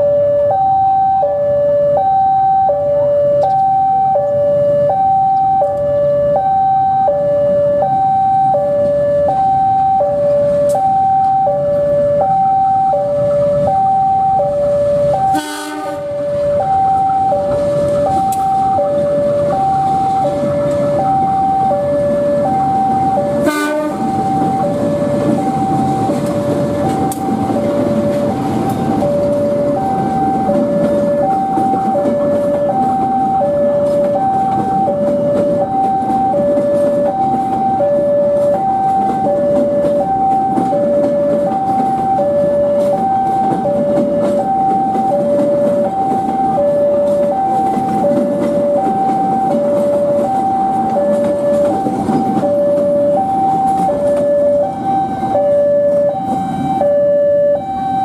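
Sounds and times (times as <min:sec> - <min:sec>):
two-tone electronic warning alarm: 0:00.0 - 0:58.0
train wheels rumbling on rails: 0:05.3 - 0:58.0
train horn blast: 0:15.3 - 0:16.2, 0:23.4 - 0:24.1.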